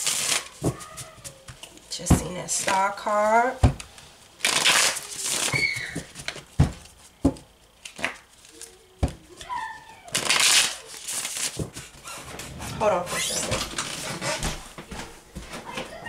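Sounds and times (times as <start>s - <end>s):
cards riffling: 3.8s - 7.0s, 10.1s - 12.2s.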